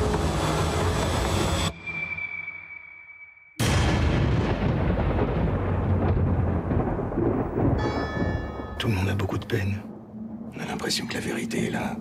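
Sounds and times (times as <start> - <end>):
low thunder-like rumble: 3.6 - 12.0.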